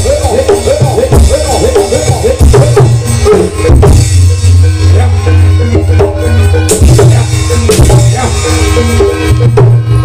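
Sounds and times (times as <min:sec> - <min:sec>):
drum strokes: 0:00.0 - 0:10.0
gamelan melody of held notes: 0:00.0 - 0:10.0.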